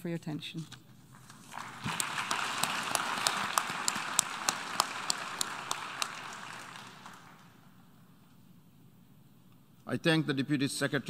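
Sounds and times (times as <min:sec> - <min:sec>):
audience applause: 0:01.3 - 0:07.6
close hand claps: 0:01.3 - 0:07.6.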